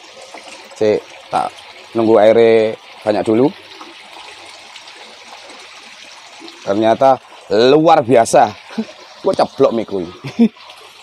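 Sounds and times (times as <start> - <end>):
water pouring into a plastic tub: 0.0 - 11.0.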